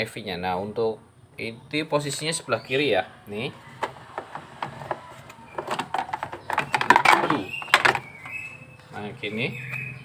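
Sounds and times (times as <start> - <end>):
plastic lid clicks and rattles: 4.9 - 8.1.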